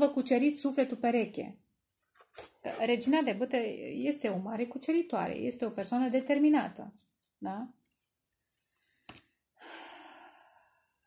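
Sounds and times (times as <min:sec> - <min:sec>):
woman breathing softly: 0:08.5 - 0:11.0.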